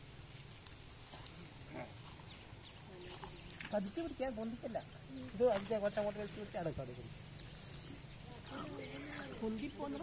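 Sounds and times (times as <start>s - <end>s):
faint water splashes: 0.0s - 10.0s.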